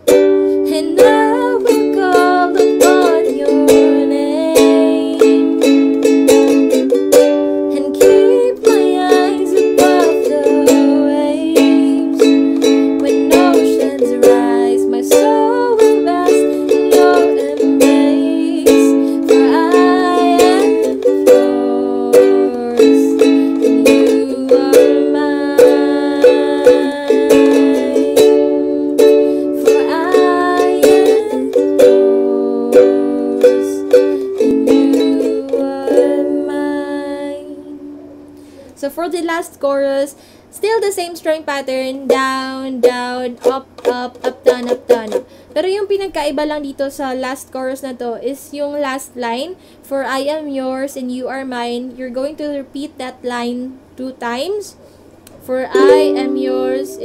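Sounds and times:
ukulele strumming: 0.0 - 39.9, 40.7 - 48.0, 55.3 - 57.0
woman singing: 0.5 - 7.0, 7.6 - 38.0, 38.8 - 57.0.

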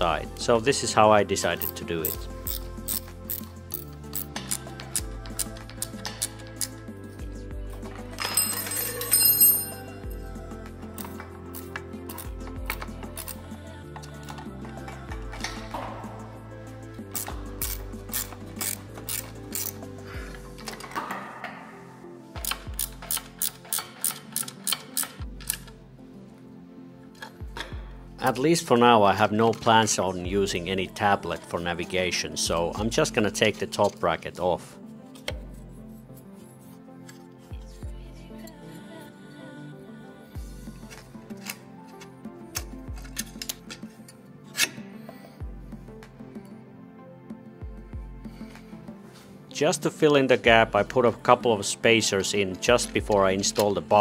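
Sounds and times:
background music: 0.0 - 54.0
ratchet wrench clicking: 1.6 - 6.8, 11.0 - 13.4, 17.1 - 19.9, 22.4 - 25.7.

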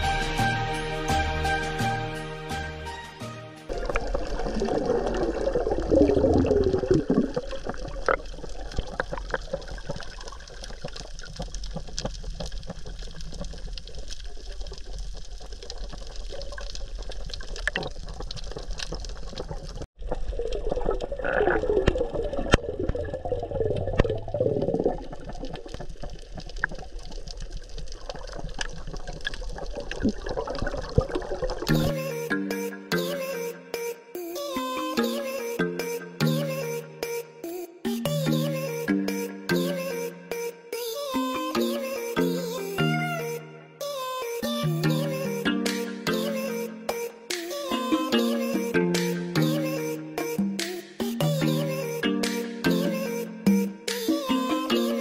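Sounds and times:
underwater water rushing and bubbling: 3.7 - 32.1.

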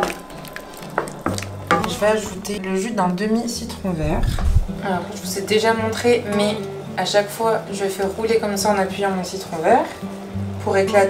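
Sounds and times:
sauce sizzling: 0.0 - 10.7.

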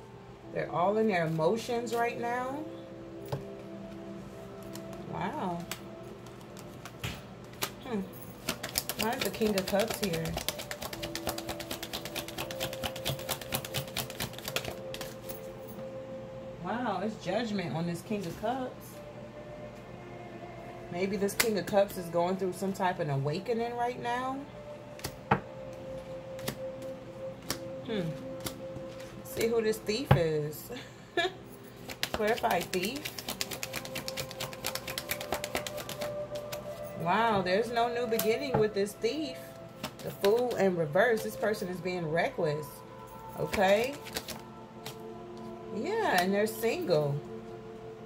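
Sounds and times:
soft background music: 0.0 - 48.0
cards being shuffled: 5.6 - 15.3, 26.3 - 29.5, 31.8 - 36.8, 39.8 - 40.6, 43.4 - 45.0.

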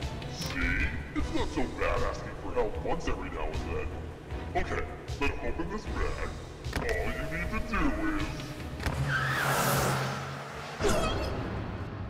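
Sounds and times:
car pulling away: 8.2 - 10.8.

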